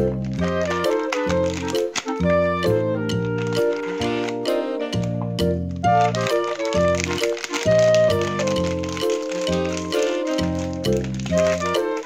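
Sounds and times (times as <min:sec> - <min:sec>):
background music melody over bass: 0:00.0 - 0:12.0.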